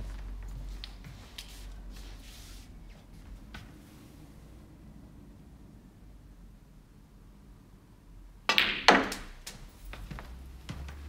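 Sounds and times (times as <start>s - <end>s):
ball knocking into pocket: 8.5s - 9.4s
cue striking ball: 8.5s - 9.4s
sharp click of balls colliding: 8.5s - 9.4s.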